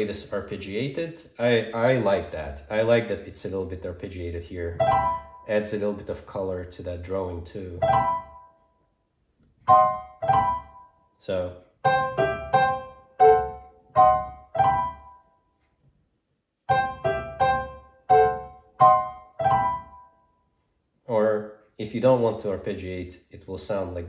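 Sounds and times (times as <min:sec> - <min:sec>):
digital piano chords: 0:04.7 - 0:06.0, 0:07.6 - 0:08.7, 0:09.6 - 0:15.4, 0:16.6 - 0:20.4.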